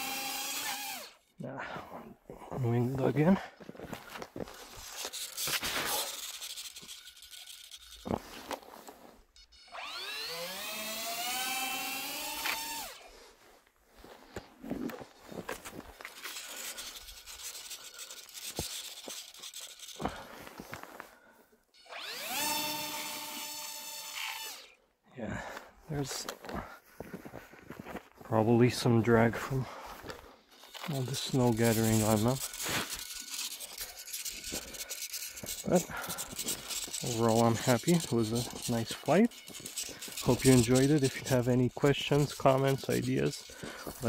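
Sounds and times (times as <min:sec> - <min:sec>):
electric motors whining: 0:00.0 - 0:01.3, 0:04.4 - 0:13.1, 0:15.6 - 0:20.7, 0:21.8 - 0:24.8, 0:30.5 - 0:44.0.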